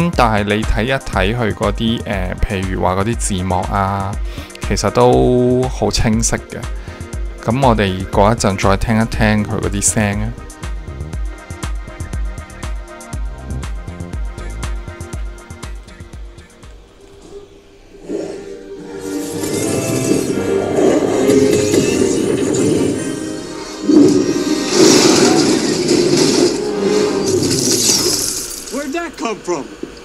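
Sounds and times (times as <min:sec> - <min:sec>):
action film soundtrack on small speaker: 0:00.0 - 0:30.0.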